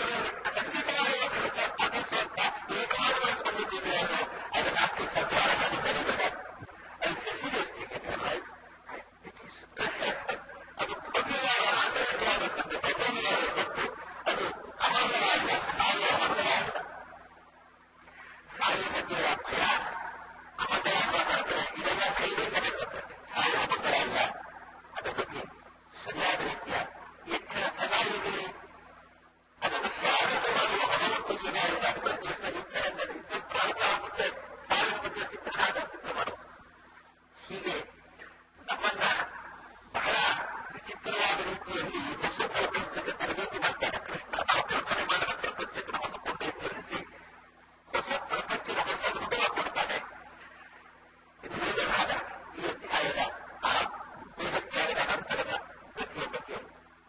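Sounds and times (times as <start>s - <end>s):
man lecturing: 0.0s - 16.9s, 18.5s - 28.6s, 29.6s - 36.4s, 37.4s - 47.2s, 47.9s - 50.1s, 51.5s - 56.6s
faint low hum: 0.0s - 57.0s.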